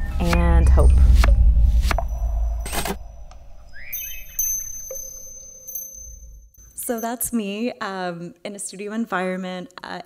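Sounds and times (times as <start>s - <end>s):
low rumble: 0.0s - 4.6s
steady tone: 0.0s - 7.0s
quick rising chirps: 1.0s - 6.6s.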